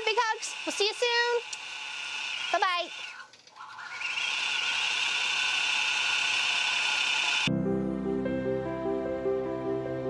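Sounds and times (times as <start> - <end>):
quilting machine whirring: 0.0 - 7.5
soft music: 7.5 - 10.0.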